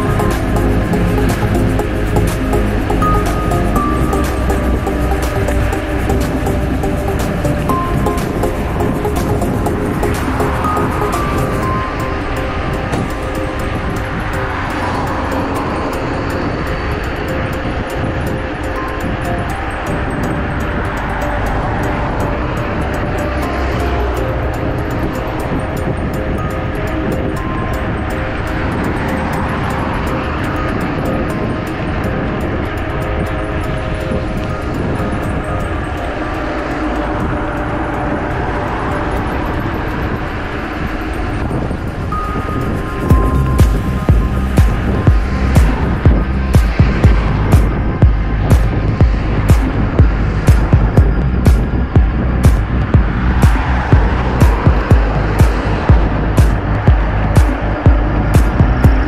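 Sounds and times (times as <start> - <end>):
bicycle tyre noise on road: 0.0 - 59.0
wind on microphone: 0.0 - 59.0.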